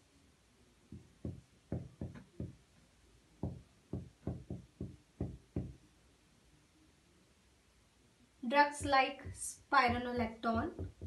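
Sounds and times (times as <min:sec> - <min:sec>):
marker knocking against board: 0:00.9 - 0:02.6, 0:03.4 - 0:05.8, 0:08.8 - 0:11.0.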